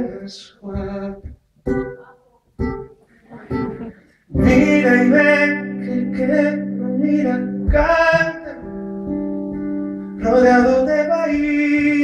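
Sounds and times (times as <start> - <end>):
person singing: 0.0 - 2.4, 3.3 - 9.1, 10.2 - 12.0
acoustic guitar chords ringing: 1.6 - 12.0.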